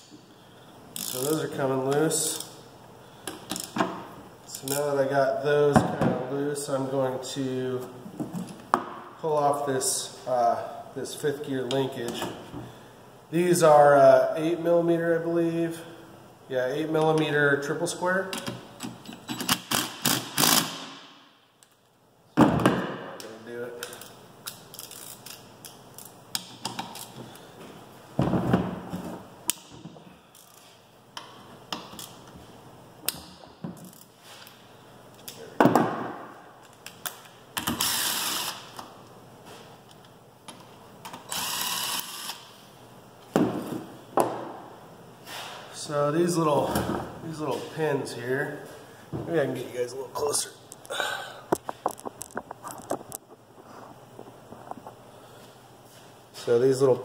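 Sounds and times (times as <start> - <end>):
hand ratchet clicking: 1.0 - 1.4, 18.4 - 20.8, 23.8 - 25.4, 41.1 - 42.4
cordless drill bursts: 37.8 - 38.6, 41.3 - 42.4.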